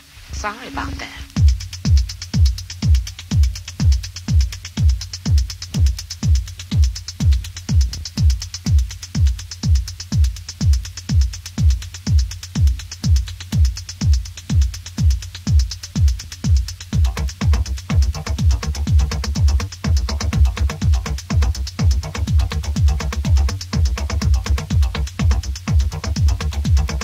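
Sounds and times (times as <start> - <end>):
bass and synth: 0.0 - 27.0
techno kick drum: 0.0 - 27.0
ticking hi-hat: 0.0 - 27.0.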